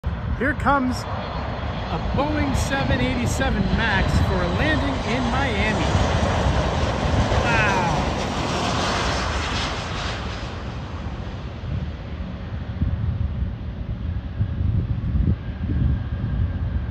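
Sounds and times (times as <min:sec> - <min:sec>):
airliner rumbling on runway: 0:00.0 - 0:16.9
jet engines rushing: 0:00.0 - 0:16.9
falling engine whine: 0:00.1 - 0:16.9.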